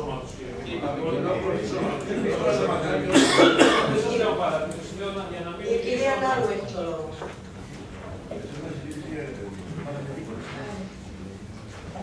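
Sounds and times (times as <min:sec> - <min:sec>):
people talking: 0:00.0 - 0:07.4, 0:08.3 - 0:12.0
person coughing: 0:03.1 - 0:04.0.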